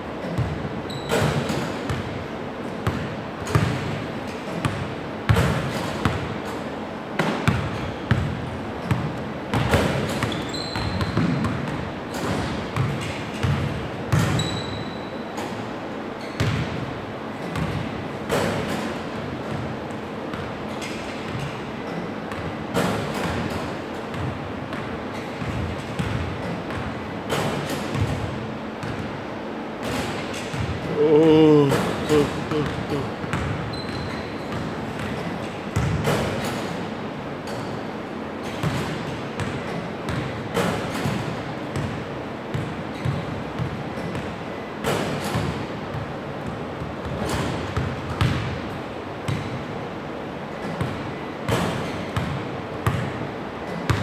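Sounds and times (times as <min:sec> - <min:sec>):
basketballs bouncing on wooden floor: 0:02.8 - 0:06.4, 0:07.2 - 0:15.0, 0:17.4 - 0:19.7, 0:20.3 - 0:29.1, 0:29.8 - 0:36.4, 0:38.5 - 0:48.6, 0:50.6 - 0:54.0.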